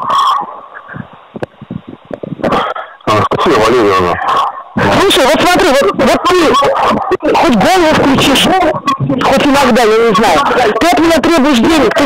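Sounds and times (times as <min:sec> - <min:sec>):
crackles and clicks: 0:00.0 - 0:04.9
burst of distortion: 0:00.0 - 0:12.0
telephone line hiss: 0:00.0 - 0:12.0.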